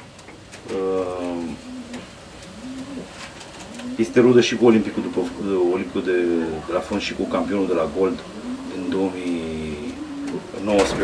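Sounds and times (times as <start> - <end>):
pigeons cooing: 0.4 - 11.0.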